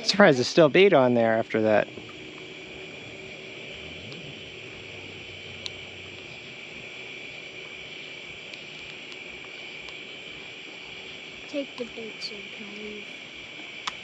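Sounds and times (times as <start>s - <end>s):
high-pitched insect chorus: 0.0s - 14.0s.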